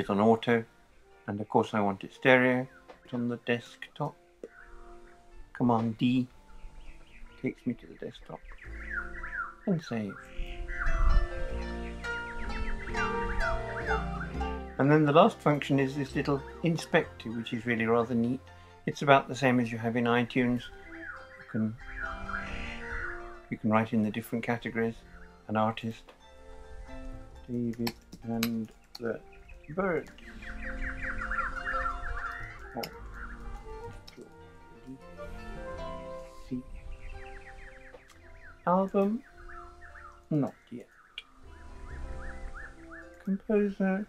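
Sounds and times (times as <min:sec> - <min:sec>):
bird chirping: 0:00.0 - 0:44.0
harp music: 0:00.0 - 0:44.0
songbird trilling: 0:04.4 - 0:25.9, 0:27.6 - 0:34.1, 0:34.9 - 0:44.0.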